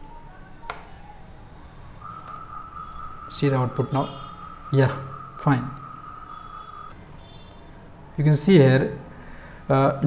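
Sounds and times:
low hum: 0.0s - 7.3s
high-pitched whine: 0.0s - 8.2s.

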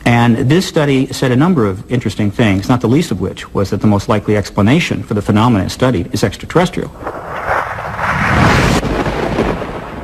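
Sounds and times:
thunder-like rumbling whoosh: 7.0s - 10.0s.

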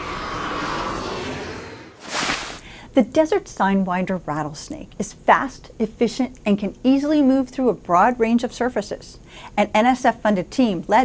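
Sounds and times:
jet airliner passing low: 0.0s - 2.0s.

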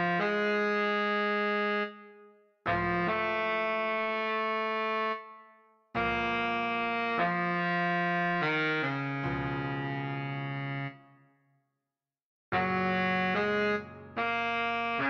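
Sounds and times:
baritone saxophone held notes: 12.6s - 15.0s.

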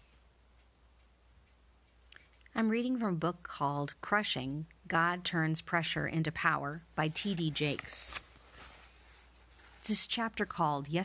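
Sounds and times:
faint regular ticks: 0.0s - 2.7s
low steady hum: 0.0s - 11.0s.

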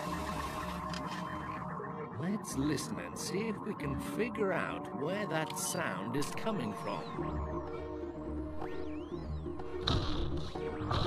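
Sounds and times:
electronic hum: 0.0s - 3.9s.

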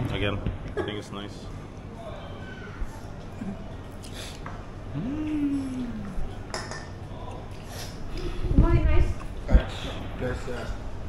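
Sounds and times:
tableware clinking: 6.3s - 7.0s.

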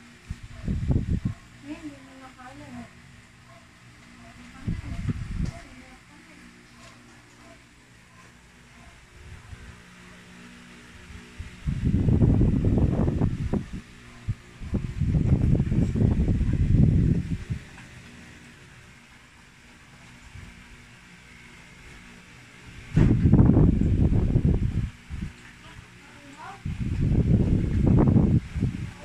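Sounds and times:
microphone handling rumble: 4.6s - 5.6s, 11.6s - 17.7s, 22.9s - 25.4s, 26.6s - 29.0s.

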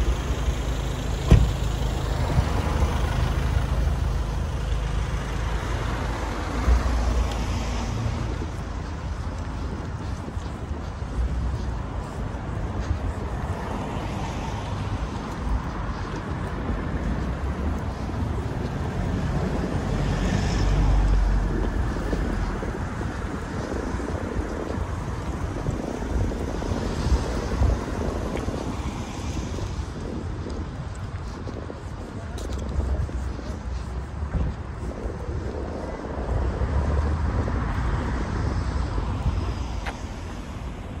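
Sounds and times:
cars driving past: 0.0s - 32.1s.

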